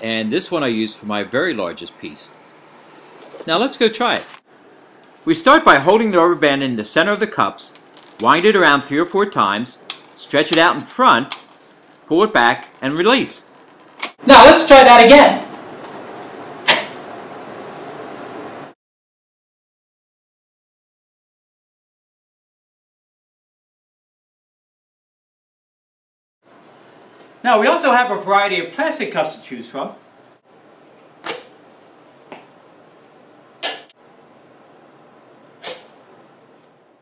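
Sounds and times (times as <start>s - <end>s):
room hiss: 12.1s - 18.8s
rubber band launcher snap-swish: 16.7s - 17.0s, 31.2s - 31.5s, 35.6s - 35.9s.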